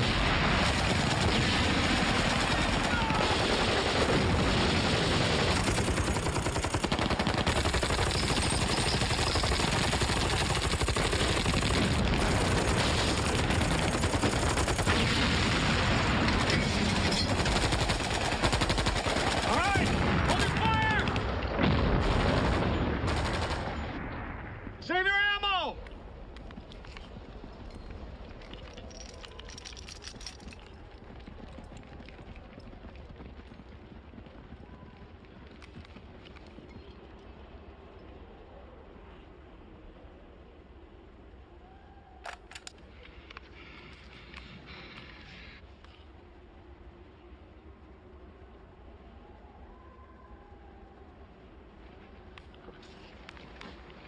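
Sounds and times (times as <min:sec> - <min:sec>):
explosions: 0:00.0 - 0:06.4, 0:11.0 - 0:17.5, 0:19.6 - 0:24.8
machine-gun and rifle fire: 0:00.0 - 0:24.0
man yelling: 0:19.5 - 0:21.1, 0:24.8 - 0:25.8.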